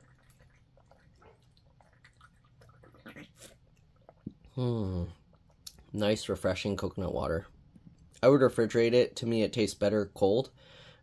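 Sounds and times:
sipping and swallowing: 0:00.0 - 0:06.0.

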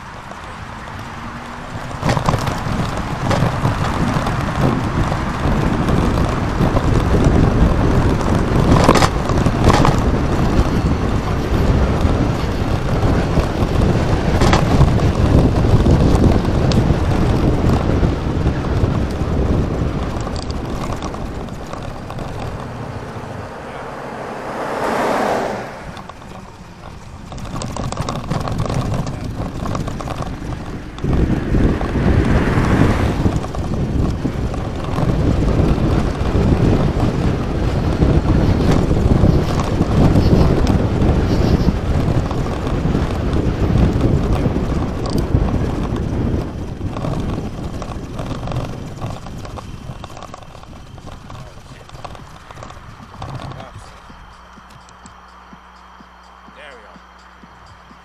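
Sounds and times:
car passing: 0:00.0 - 0:58.0
wind buffeting microphone: 0:00.0 - 0:58.0.

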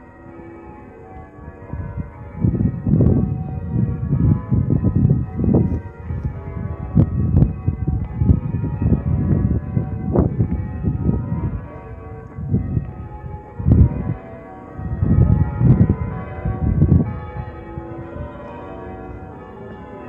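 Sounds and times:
church bells ringing: 0:00.0 - 0:20.0
low rumbling bursts: 0:14.8 - 0:17.7.

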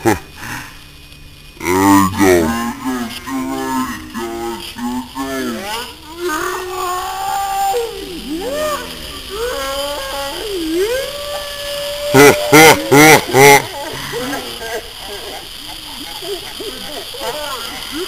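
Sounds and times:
sparklers hissing: 0:00.0 - 0:18.0
young voices whooping and calling: 0:05.8 - 0:18.0.

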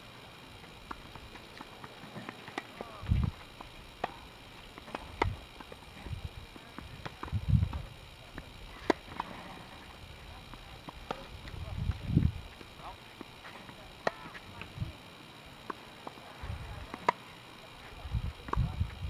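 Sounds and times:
tennis balls struck by rackets: 0:00.6 - 0:14.8, 0:15.6 - 0:17.3.

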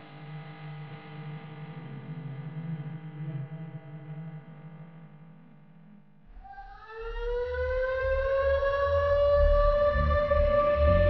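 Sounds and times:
air raid siren wail: 0:06.6 - 0:11.0.

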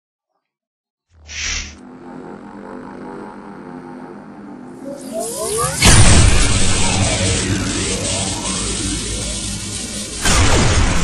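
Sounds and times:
musical drone: 0:01.2 - 0:11.0.

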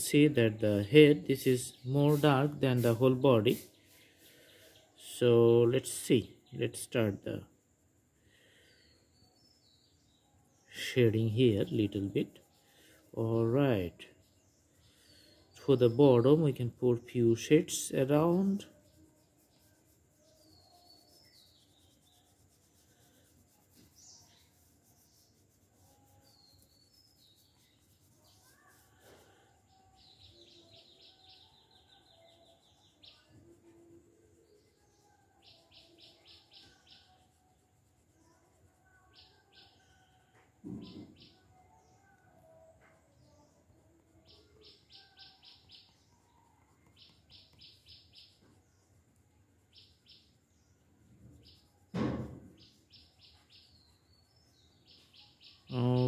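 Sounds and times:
small bird chirping trills: 0:00.0 - 0:56.0
pencil shading on paper: 0:00.2 - 0:04.8, 0:17.4 - 0:29.4.

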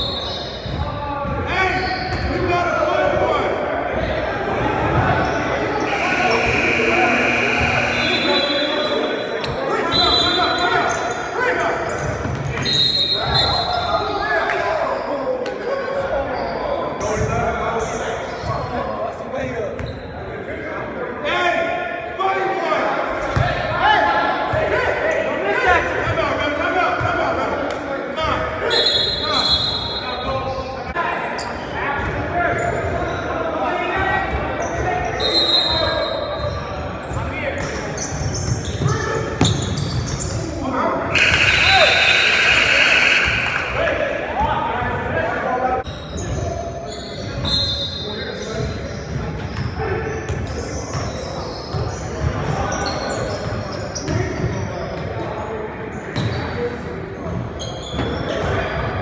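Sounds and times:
players' voices echoing: 0:00.0 - 0:57.6.

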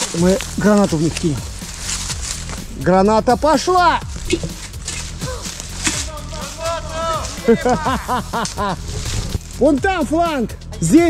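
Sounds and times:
background music: 0:00.0 - 0:11.0
voices calling out: 0:00.0 - 0:11.0.

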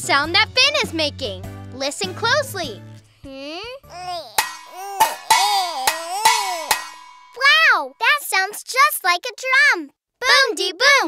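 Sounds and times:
spoons drumming on a pot: 0:04.4 - 0:07.6.

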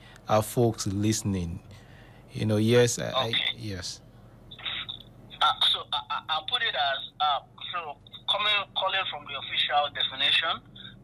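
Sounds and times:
man speaking: 0:02.3 - 0:04.0.

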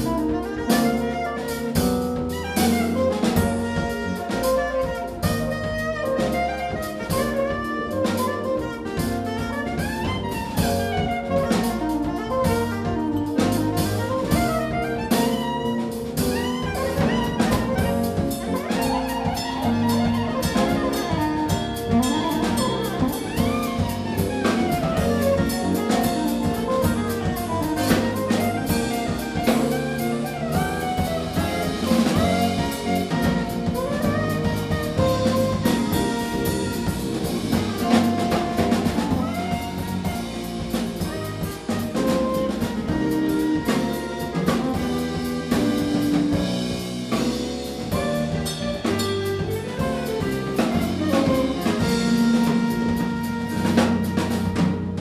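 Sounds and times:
drum kit: 0:00.0 - 0:55.0
electric bass: 0:00.0 - 0:55.0
saxophone melody: 0:00.0 - 0:55.0.

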